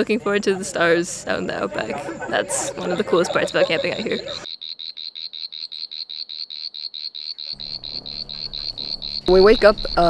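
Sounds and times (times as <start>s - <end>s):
pulsing high-pitched animal chirp: 3.7s - 10.0s.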